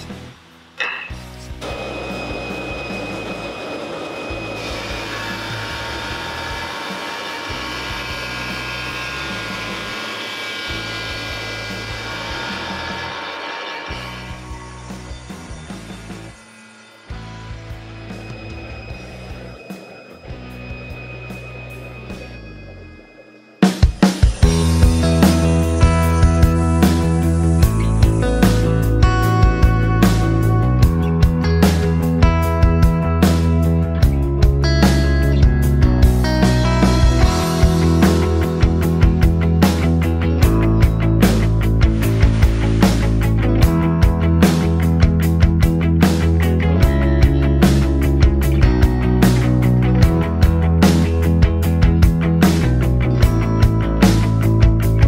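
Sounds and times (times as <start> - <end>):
table saw cutting wood: 0.0 - 29.0, 36.2 - 45.0
background music: 0.0 - 55.0
strummed guitar music: 13.9 - 55.0.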